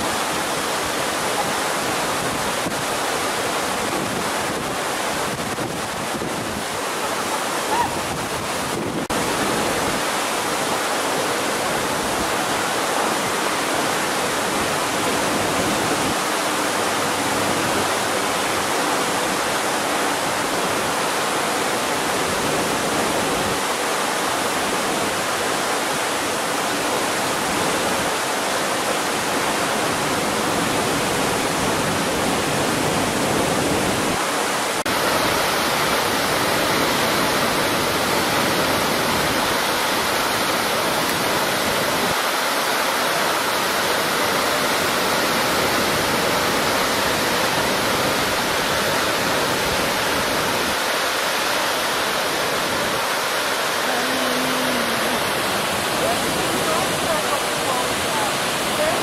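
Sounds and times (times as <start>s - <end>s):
waterfall rushing: 0.0s - 59.0s.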